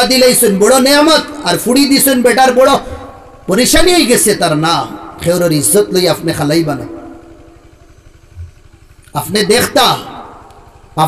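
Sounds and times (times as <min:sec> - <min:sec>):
amplified speech echo: 0:00.0 - 0:07.7, 0:09.1 - 0:11.0
small engine rumble: 0:00.0 - 0:11.0.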